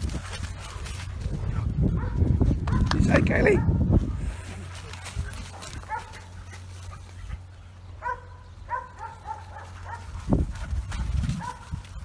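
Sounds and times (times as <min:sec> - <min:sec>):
puppies yipping: 0:04.8 - 0:12.0.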